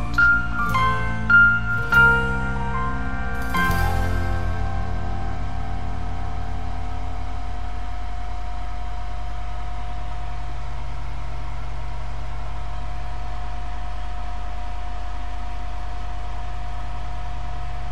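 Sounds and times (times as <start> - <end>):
pulsing low music notes: 0.0 - 8.1
high-pitched whine: 0.0 - 11.7
low hum and hiss: 0.0 - 17.9.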